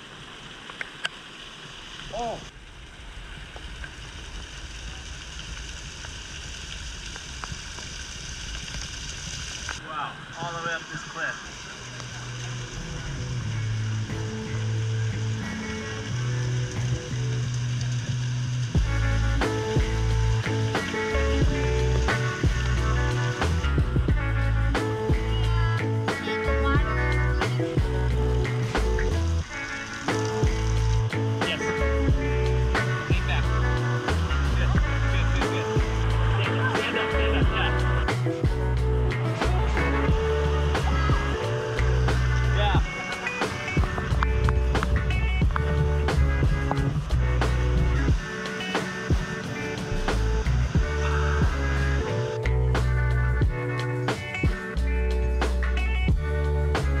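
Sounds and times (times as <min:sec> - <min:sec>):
water running down rock: 0:00.0 - 0:56.8
background music with beat: 0:13.4 - 0:57.0.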